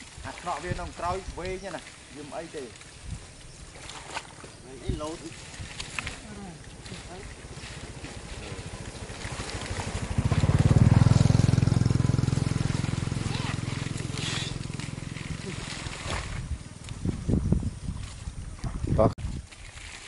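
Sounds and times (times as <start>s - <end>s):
small engine passing by: 5.9s - 17.3s.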